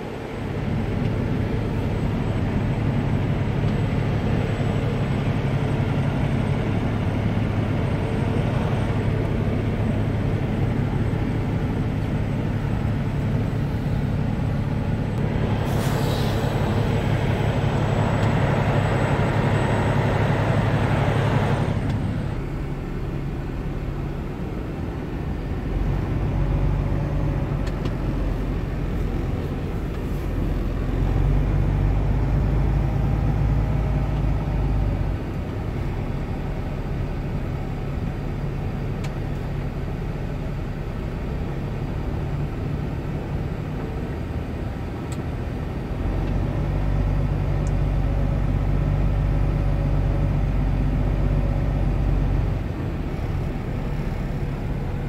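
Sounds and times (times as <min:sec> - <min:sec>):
truck diesel engine droning: 0:00.0 - 0:55.0.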